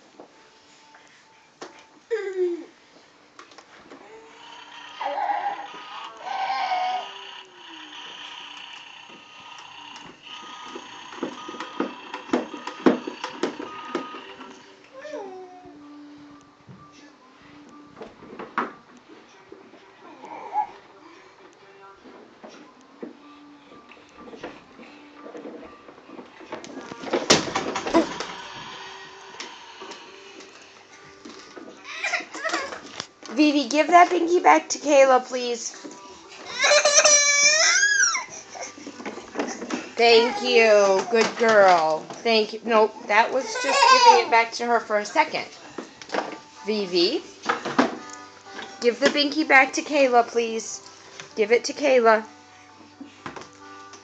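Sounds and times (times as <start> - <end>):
plastic knocks and clatter: 11.2 - 14.2.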